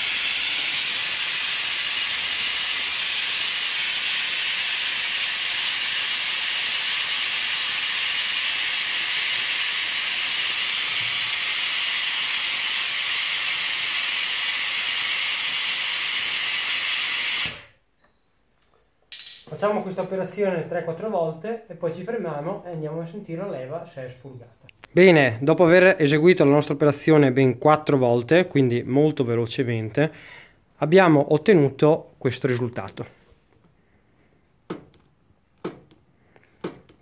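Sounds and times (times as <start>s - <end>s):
compressed air hissing: 0.0s - 17.8s.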